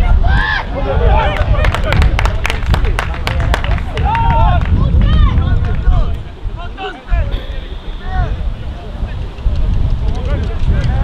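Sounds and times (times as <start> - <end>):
steady low rumble: 1.5 - 11.0.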